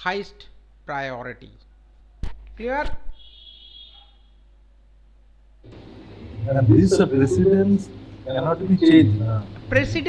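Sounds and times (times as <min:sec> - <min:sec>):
low steady hum: 0:04.4 - 0:10.0.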